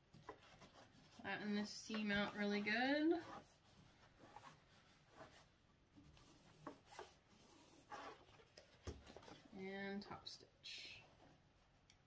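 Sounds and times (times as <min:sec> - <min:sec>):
fabric rustling under hand: 0:00.0 - 0:09.8.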